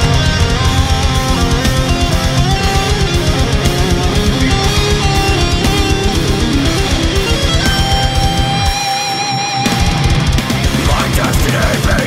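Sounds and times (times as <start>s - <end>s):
electric guitars: 0.0s - 12.0s.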